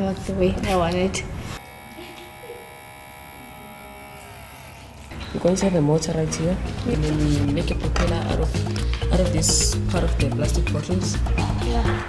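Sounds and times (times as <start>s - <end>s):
small motor buzzing whine: 1.5s - 6.1s.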